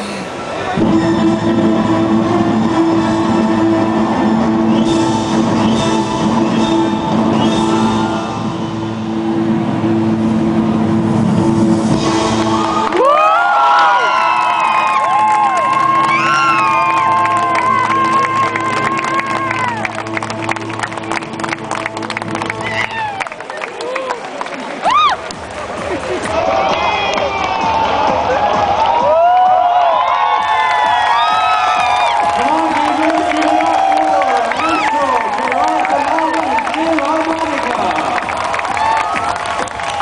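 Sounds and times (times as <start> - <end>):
audience applause: 12.0 - 40.0
audience cheering and whooping: 12.3 - 19.9, 22.6 - 36.6, 37.8 - 40.0.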